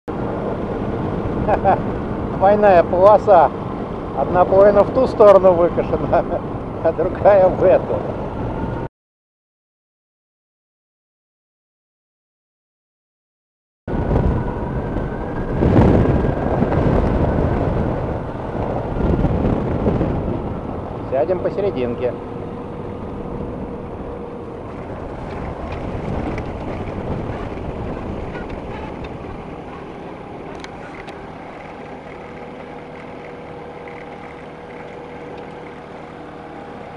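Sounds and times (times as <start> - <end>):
aircraft engine in flight: 0.1 - 8.9, 13.9 - 36.9
wind buffeting microphone: 13.9 - 36.9.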